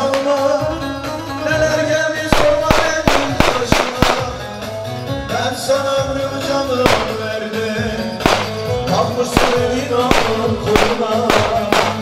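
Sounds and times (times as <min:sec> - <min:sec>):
heavy drumbeat: 0:02.3 - 0:04.5, 0:06.8 - 0:07.4, 0:08.2 - 0:08.8, 0:09.4 - 0:12.0.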